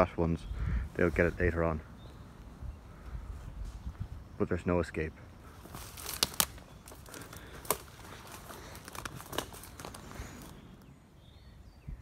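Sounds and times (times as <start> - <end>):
footsteps through dry undergrowth: 5.4 - 10.9
twigs snapping underfoot: 5.5 - 10.8.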